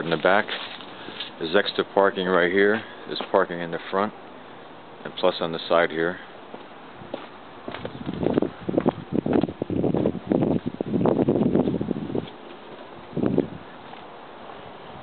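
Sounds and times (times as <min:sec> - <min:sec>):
footsteps scuffing on dirt path: 0:00.0 - 0:01.5, 0:06.5 - 0:14.6.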